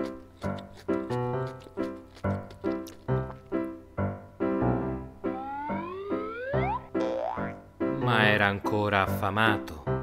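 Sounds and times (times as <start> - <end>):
playful cartoon music: 0.0 - 8.4
rising sliding glides: 5.3 - 7.0.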